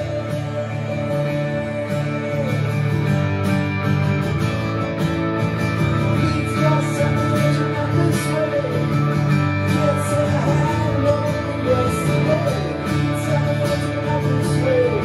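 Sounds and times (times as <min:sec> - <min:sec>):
amplified electric guitar: 0:00.0 - 0:15.0
strummed acoustic guitars: 0:00.0 - 0:15.0.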